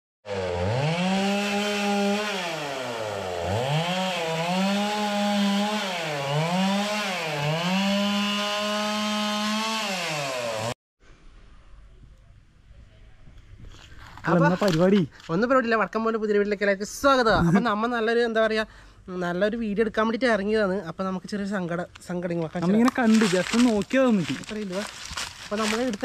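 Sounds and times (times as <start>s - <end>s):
chainsaw cutting wood: 0.3s - 10.8s, 22.6s - 26.0s.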